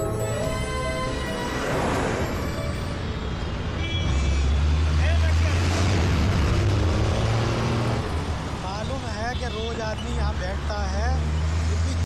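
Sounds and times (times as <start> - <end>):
bus and car engines rumbling: 0.0 - 12.0.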